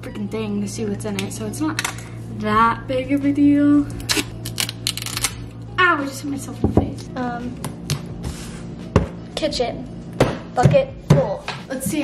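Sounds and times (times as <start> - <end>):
duct tape ripping off roll: 4.0 - 5.4.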